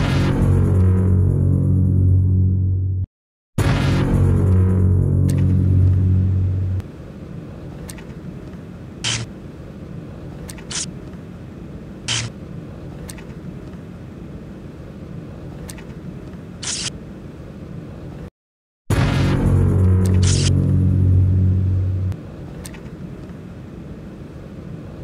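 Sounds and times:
loud deep hum: 0:00.0 - 0:06.8, 0:18.9 - 0:22.2
steady low rumble: 0:00.0 - 0:07.7, 0:18.9 - 0:22.5.

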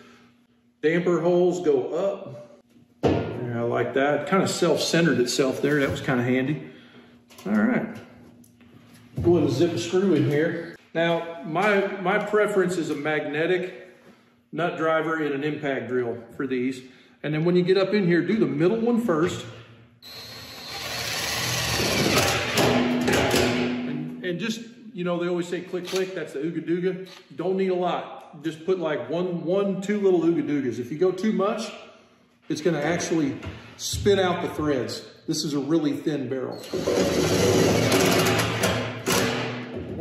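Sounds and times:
impact driver whirring: 0:20.0 - 0:22.8, 0:36.6 - 0:39.4
screw driven into sheet steel: 0:20.1 - 0:23.2, 0:36.6 - 0:39.4.

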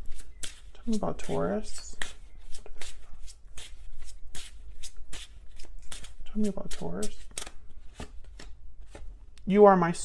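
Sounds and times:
cards being shuffled: 0:00.0 - 0:09.2.

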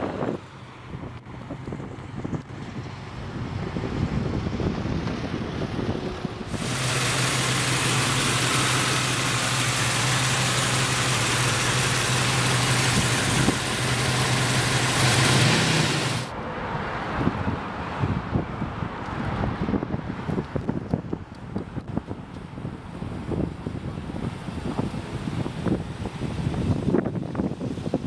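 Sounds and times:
wind on microphone: 0:00.0 - 0:11.5, 0:12.6 - 0:13.9, 0:17.1 - 0:28.0
street sound: 0:00.0 - 0:28.0
car engine idling: 0:06.4 - 0:16.3.

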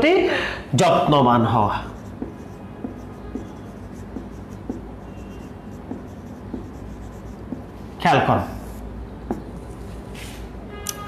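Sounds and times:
marker pen writing on whiteboard: 0:01.7 - 0:09.8.

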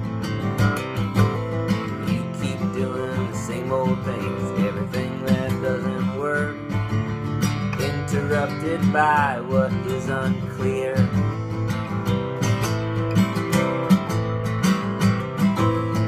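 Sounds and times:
acoustic guitar strumming: 0:00.0 - 0:16.0
man singing: 0:01.3 - 0:11.8.

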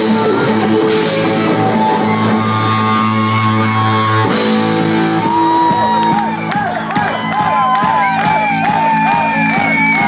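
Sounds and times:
electric guitar long notes: 0:00.0 - 0:09.8
live rock band music: 0:00.0 - 0:10.0.

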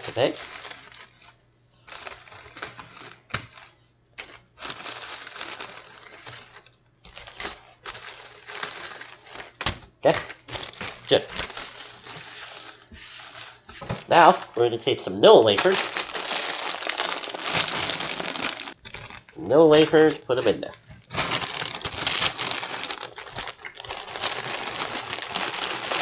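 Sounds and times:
plastic bag crinkling: 0:00.0 - 0:26.0
crackers tipped into bag: 0:15.5 - 0:19.4, 0:21.0 - 0:26.0.

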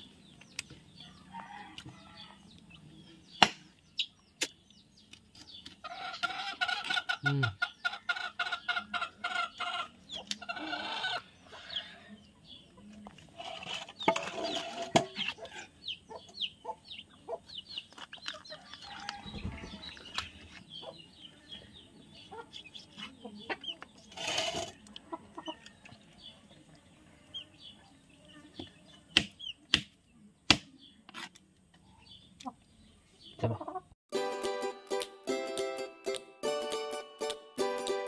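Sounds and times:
chickens clucking: 0:05.4 - 0:29.7, 0:31.7 - 0:34.0.

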